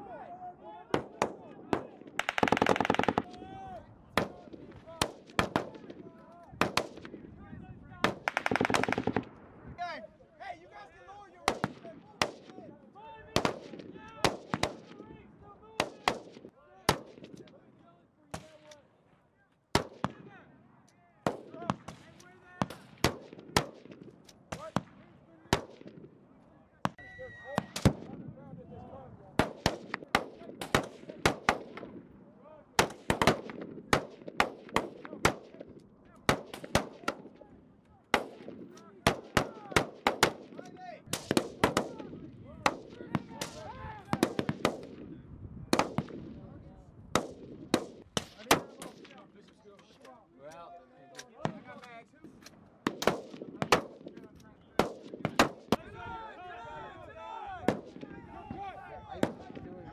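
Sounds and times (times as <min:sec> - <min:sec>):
voices: 0:00.0 - 0:22.9, 0:24.5 - 0:46.9, 0:47.8 - 0:52.6, 0:53.4 - 0:59.9
rifle shots: 0:01.0 - 0:03.4, 0:06.6 - 0:07.2, 0:08.0 - 0:09.4, 0:11.4 - 0:12.6, 0:13.4 - 0:15.0, 0:15.8 - 0:17.4, 0:19.7 - 0:20.2, 0:21.3 - 0:26.1, 0:29.4 - 0:32.0, 0:32.8 - 0:35.7, 0:36.3 - 0:37.4, 0:38.1 - 0:45.1, 0:45.7 - 0:46.4, 0:47.1 - 0:49.2, 0:52.8 - 0:54.2, 0:54.8 - 0:55.8, 0:57.7 - 0:58.1.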